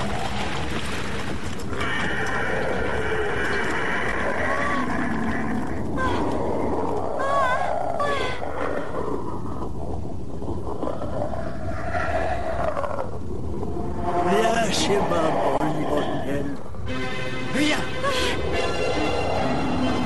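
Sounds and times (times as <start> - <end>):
dense steady rumble: 0.0 - 20.0
warbling cries: 1.8 - 9.4, 10.8 - 16.6.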